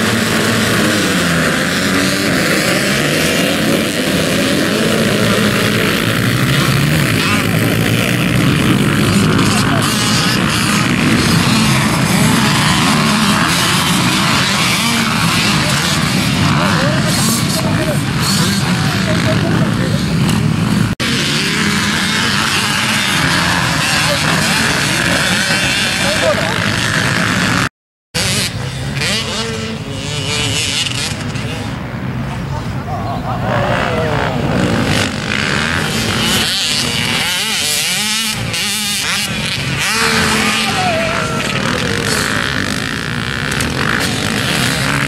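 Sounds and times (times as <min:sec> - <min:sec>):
motocross bike engines revving: 0:00.0 - 0:45.0.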